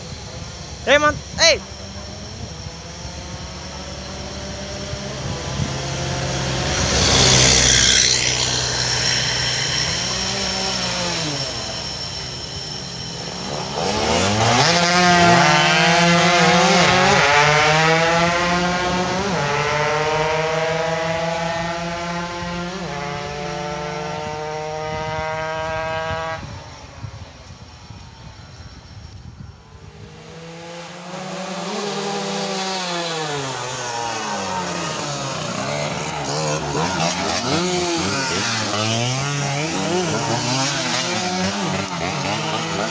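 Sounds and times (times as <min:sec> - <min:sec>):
moped engines revving: 0:00.0 - 0:42.9.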